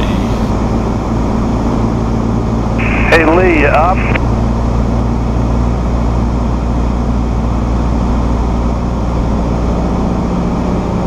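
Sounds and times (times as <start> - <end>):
aircraft engine and propeller droning: 0.0 - 11.0.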